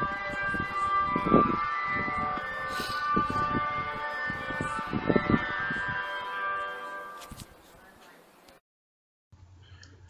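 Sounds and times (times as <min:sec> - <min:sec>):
ice cream van chime: 0:00.0 - 0:07.4.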